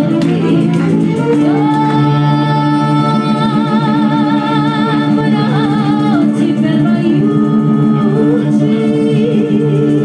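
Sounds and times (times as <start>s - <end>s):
clarinet: 0.0s - 6.4s
accordion: 0.0s - 10.0s
violin: 0.0s - 10.0s
woman singing: 0.0s - 10.0s.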